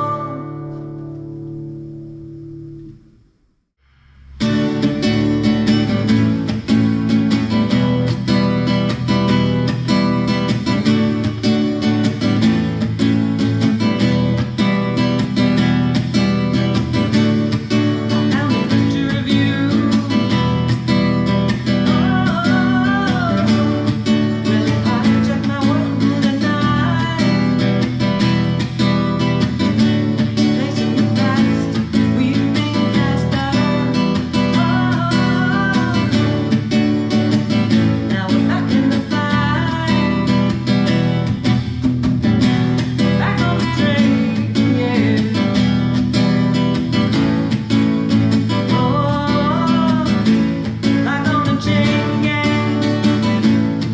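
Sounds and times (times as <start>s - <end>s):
woman singing: 0.0s - 1.2s, 16.4s - 41.4s, 43.0s - 47.4s, 48.4s - 53.9s
acoustic guitar strummed: 0.0s - 53.9s.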